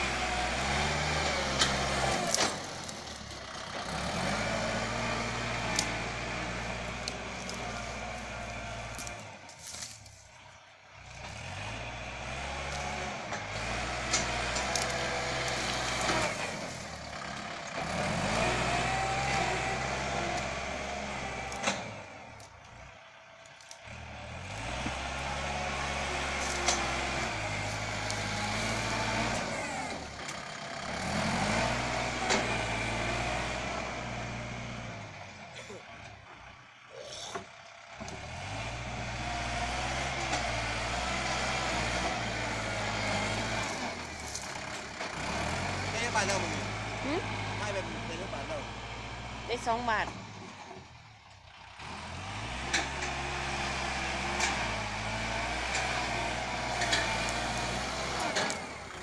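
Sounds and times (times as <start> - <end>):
tractor diesel engine under load: 0.0 - 59.0.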